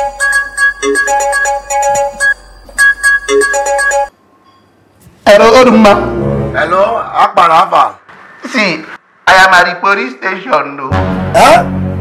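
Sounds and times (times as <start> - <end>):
mobile phone ringtone: 0.0 - 4.2.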